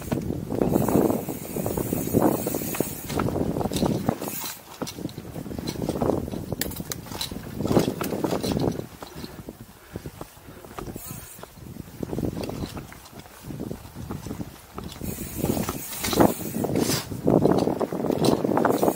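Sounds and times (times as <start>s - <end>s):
bike rattling and clicking: 0.0s - 18.9s
bike tyres rolling: 0.0s - 18.9s
wind buffeting microphone: 0.0s - 18.9s.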